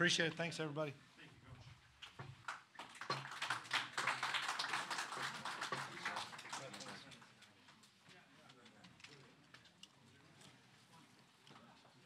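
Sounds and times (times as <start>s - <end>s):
roomful of people clapping: 2.0s - 7.8s.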